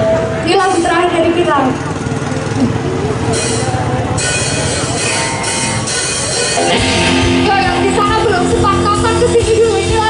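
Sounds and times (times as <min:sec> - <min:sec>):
live rock band playing: 0:04.5 - 0:10.0.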